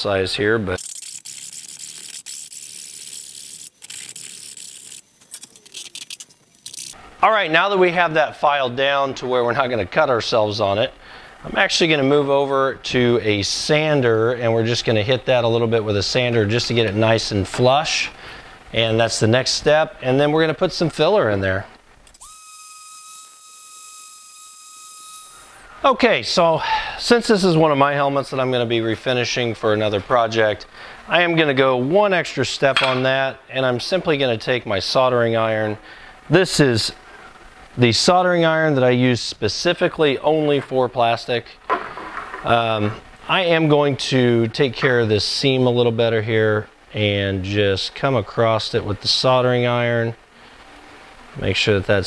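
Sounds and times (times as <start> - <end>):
faint hiss: 6.8 - 22.2, 25.3 - 52.0.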